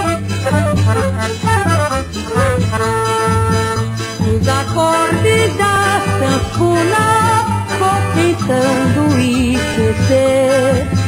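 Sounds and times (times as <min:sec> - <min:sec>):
accordion playing: 0:00.0 - 0:11.0
bass accompaniment: 0:00.0 - 0:11.0.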